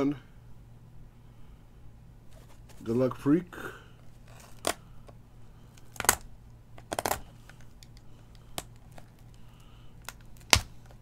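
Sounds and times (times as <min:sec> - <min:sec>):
low steady hum: 0:00.0 - 0:11.0
clicks and taps on plastic wrap: 0:10.0 - 0:11.0.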